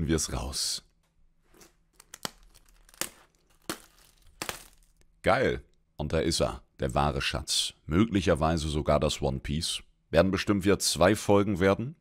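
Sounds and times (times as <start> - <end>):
plastic shrink-wrap tearing and crinkling: 1.5 - 5.0.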